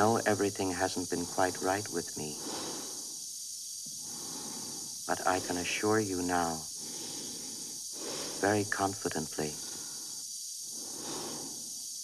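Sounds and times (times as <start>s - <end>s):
air supply hissing: 0.0s - 12.0s
person breathing in helmet: 2.2s - 3.3s, 3.9s - 8.8s, 9.5s - 12.0s.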